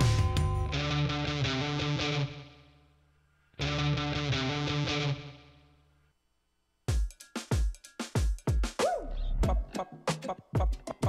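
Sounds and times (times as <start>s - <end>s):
punchy drum machine beat: 0.0s - 0.7s, 6.9s - 11.0s
electric guitar chord ringing: 0.0s - 2.8s, 3.6s - 5.8s.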